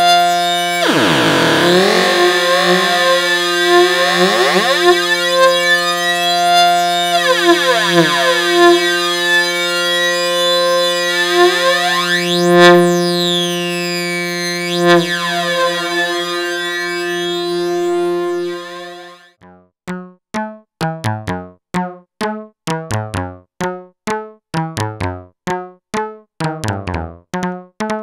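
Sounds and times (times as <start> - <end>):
synthesizer drone with flanging: 0.0 - 19.3.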